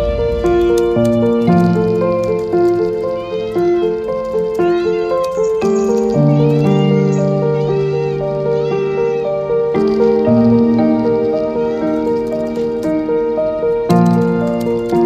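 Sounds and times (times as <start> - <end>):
cat meowing: 0.0 - 15.0.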